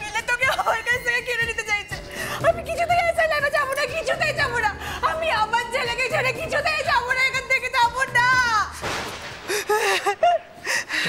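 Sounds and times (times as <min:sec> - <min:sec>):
woman sobbing: 0:00.0 - 0:01.4, 0:09.5 - 0:11.0.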